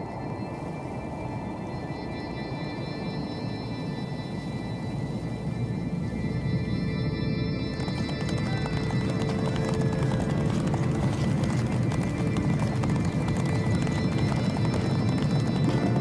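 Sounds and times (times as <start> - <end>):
background music: 0.0 - 16.0
horse hoofbeats: 7.6 - 16.0.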